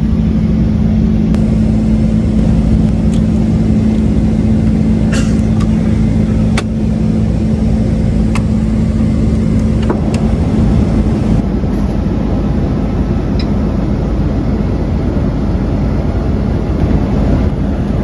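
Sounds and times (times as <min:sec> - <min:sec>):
airliner cabin drone: 0:00.0 - 0:18.0
low hum: 0:00.0 - 0:18.0.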